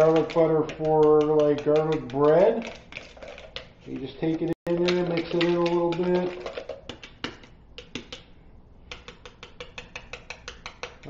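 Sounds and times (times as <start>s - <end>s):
utensil clicking against bowl: 0.0s - 8.3s, 8.9s - 11.0s.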